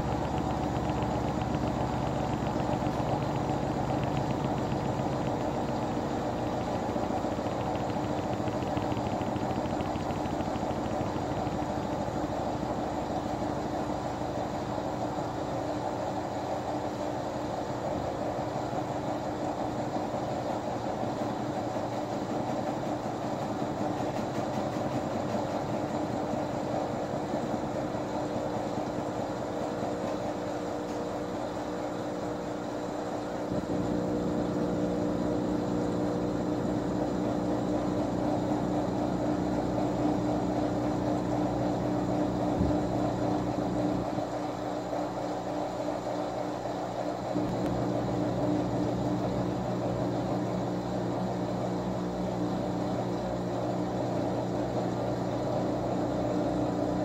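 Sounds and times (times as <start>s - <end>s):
washing machine spinning: 0.0s - 57.0s.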